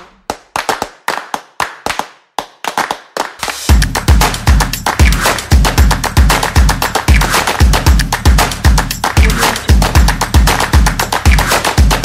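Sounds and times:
sharp hand claps: 0:00.0 - 0:12.0.

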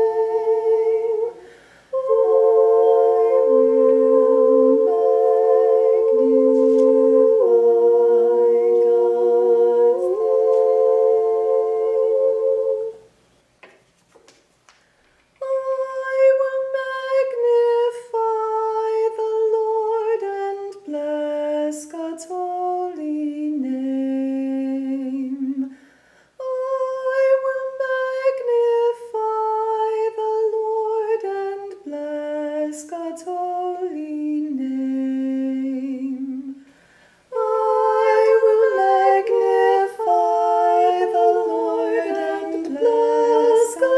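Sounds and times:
women singing chant in harmony: 0:00.0 - 0:13.1, 0:15.4 - 0:25.8, 0:26.4 - 0:43.9.

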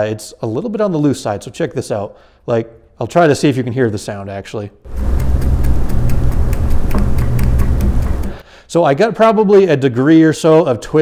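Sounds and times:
low rumble: 0:04.9 - 0:08.4.

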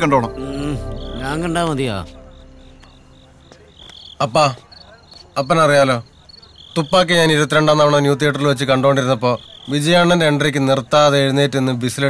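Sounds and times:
cricket chirping: 0:00.0 - 0:08.0, 0:08.6 - 0:10.9.

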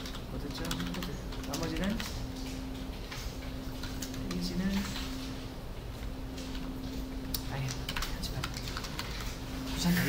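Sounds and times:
computer keyboard typing: 0:00.0 - 0:05.3, 0:06.4 - 0:10.0.

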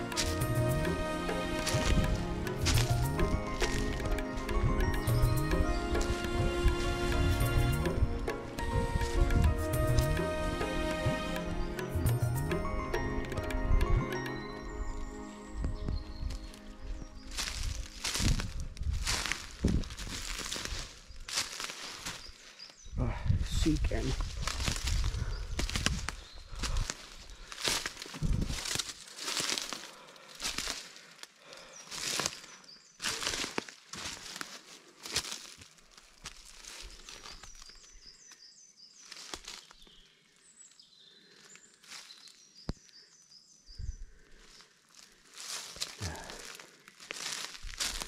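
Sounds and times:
footsteps on forest path: 0:00.0 - 0:43.3, 0:44.1 - 0:48.0.

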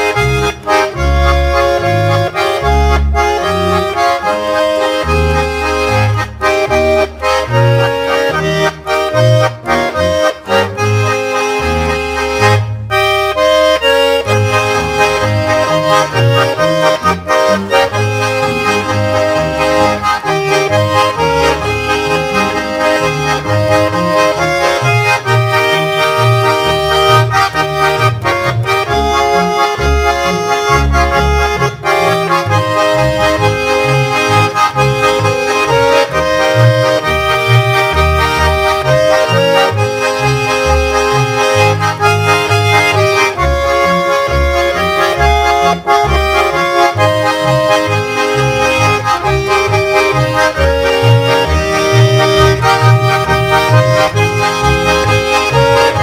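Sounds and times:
button accordions playing: 0:00.0 - 0:56.0
double bass playing: 0:00.0 - 0:56.0.

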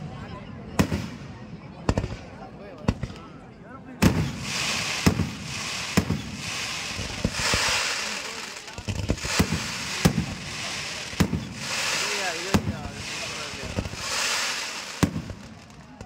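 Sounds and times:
fireworks bursting with sharp bangs: 0:00.7 - 0:03.4, 0:04.0 - 0:16.0
crackling hiss: 0:04.1 - 0:16.0.

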